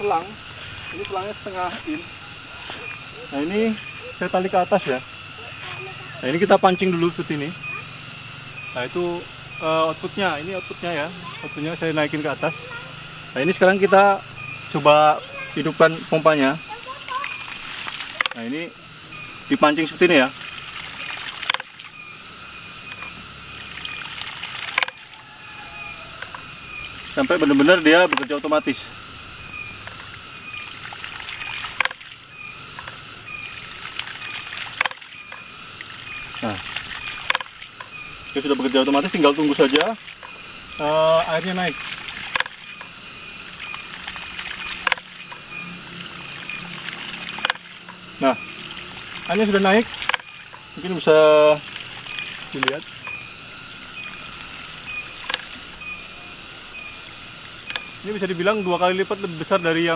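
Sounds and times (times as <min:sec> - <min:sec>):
water spurting and hissing: 0:00.0 - 0:59.9
pump valves clacking: 0:08.6 - 0:25.2, 0:25.8 - 0:56.1.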